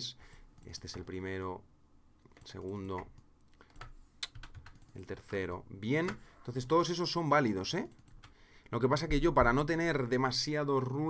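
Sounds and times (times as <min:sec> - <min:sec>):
clicks on a computer keyboard: 0:02.2 - 0:05.2.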